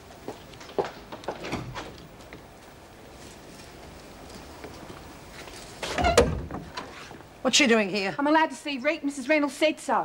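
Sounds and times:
door opening clunk: 5.8s - 6.9s.

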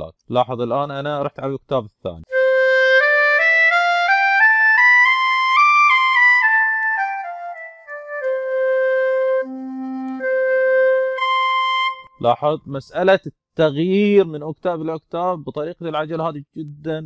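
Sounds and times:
clarinet playing a scale: 2.3s - 12.2s.

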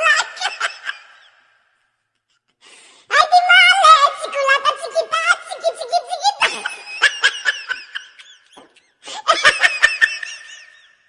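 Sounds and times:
high-pitched laughter: 0.0s - 1.6s, 5.0s - 11.0s.

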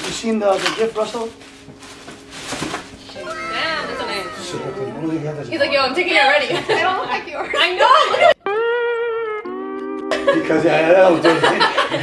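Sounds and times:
packaging rustling and knocking: 0.0s - 3.2s
people saying ooh: 3.2s - 5.2s.

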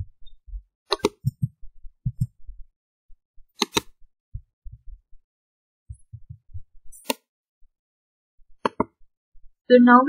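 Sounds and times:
computer keyboard keystrokes: 3.6s - 3.9s
sharp click: 3.6s - 3.9s.

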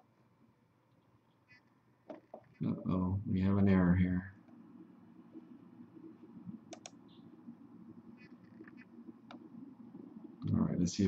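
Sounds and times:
low room hum: 0.0s - 11.0s
computer mouse clicks: 6.7s - 7.2s.

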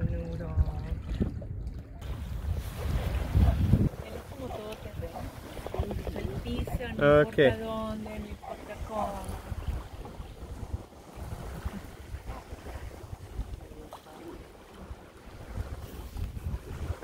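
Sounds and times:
wind buffeting microphone: 0.0s - 14.2s, 14.8s - 17.0s
water rushing along hull: 0.0s - 17.0s.

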